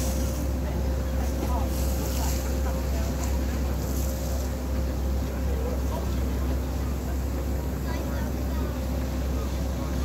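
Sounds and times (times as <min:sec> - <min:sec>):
ferry engine droning: 0:00.0 - 0:10.0
water wash: 0:00.0 - 0:10.0.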